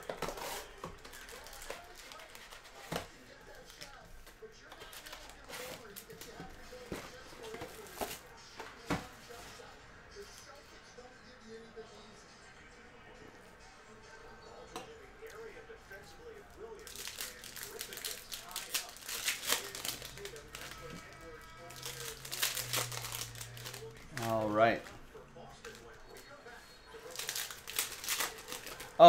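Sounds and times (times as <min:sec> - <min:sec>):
plastic wrappers crinkling: 0:00.0 - 0:08.2, 0:16.6 - 0:24.9, 0:25.6 - 0:29.0
cards being handled: 0:00.0 - 0:09.4, 0:16.8 - 0:25.0, 0:27.0 - 0:29.0.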